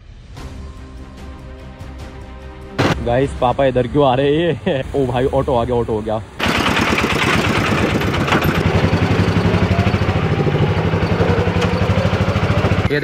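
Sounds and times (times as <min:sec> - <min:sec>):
small engine puttering: 0:06.4 - 0:13.0.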